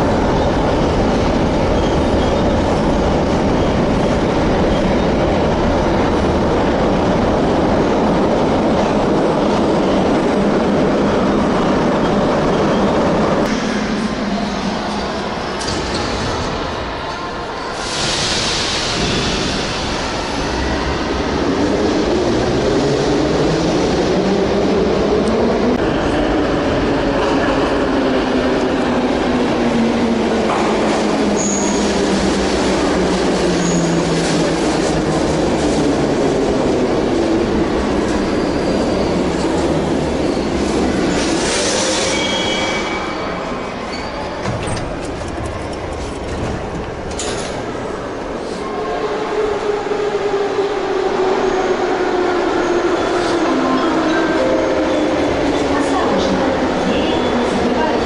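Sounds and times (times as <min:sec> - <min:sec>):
wheel and brake squeal: 0:41.1 - 0:44.5.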